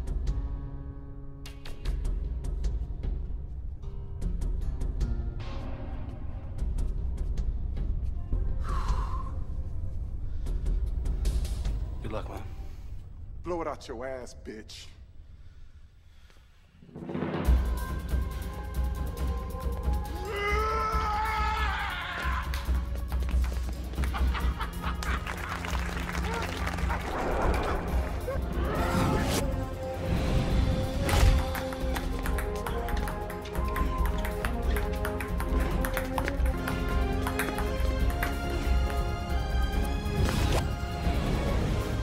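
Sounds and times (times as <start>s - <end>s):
dramatic music: 16.9s - 42.0s
pounding music beat: 31.4s - 40.2s.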